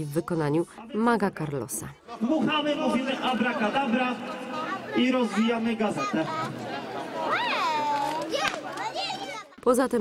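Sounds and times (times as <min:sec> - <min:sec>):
children calling out: 0:04.7 - 0:09.6.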